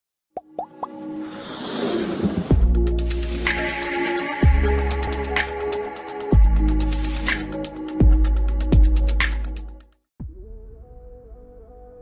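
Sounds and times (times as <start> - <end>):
whoosh: 1.2 - 3.6.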